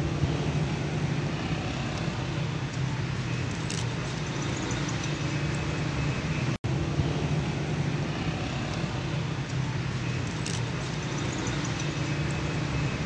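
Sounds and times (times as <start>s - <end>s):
road traffic hum: 0.0s - 13.0s.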